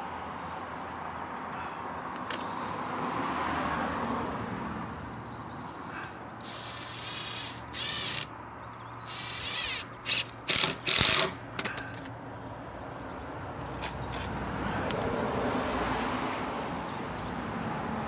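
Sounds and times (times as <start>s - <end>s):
cordless drill driving screws: 6.4s - 8.3s, 9.1s - 11.4s.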